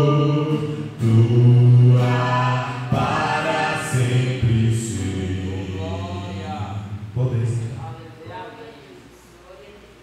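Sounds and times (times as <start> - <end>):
man singing a long low note: 0.0 - 7.2.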